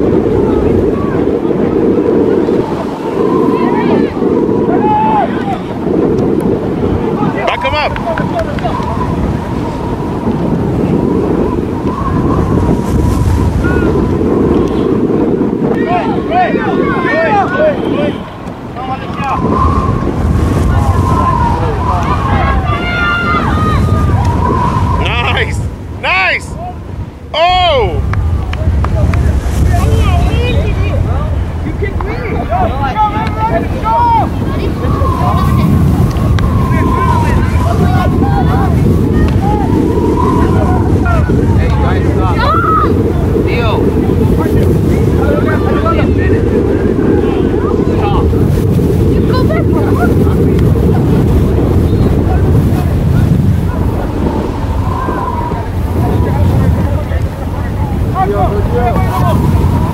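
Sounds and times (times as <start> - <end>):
wind buffeting microphone: 0.0 - 59.9
distant shouting: 15.8 - 43.4, 51.9 - 59.9.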